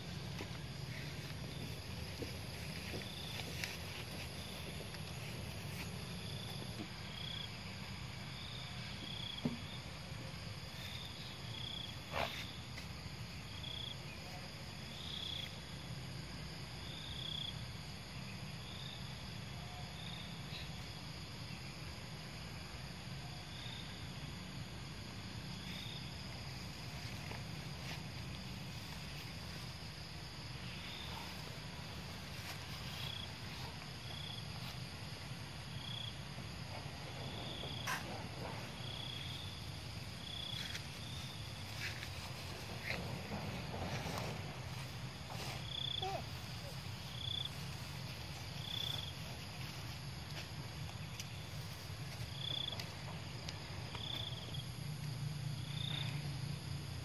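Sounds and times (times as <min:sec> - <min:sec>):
insect chirps: 0:00.0 - 0:57.0.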